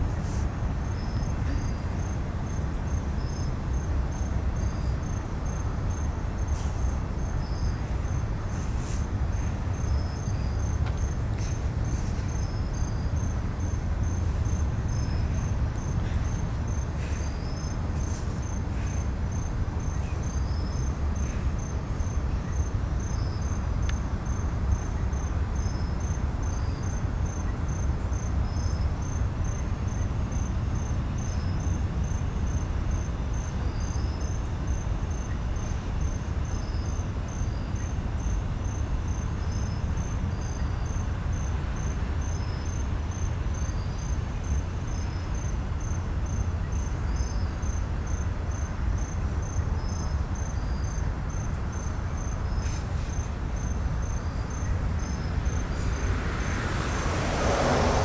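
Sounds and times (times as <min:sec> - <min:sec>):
crickets chirping: 0:00.0 - 0:58.0
insect chirping irregularly: 0:25.1 - 0:56.1
freight train rumbling past: 0:54.5 - 0:58.0.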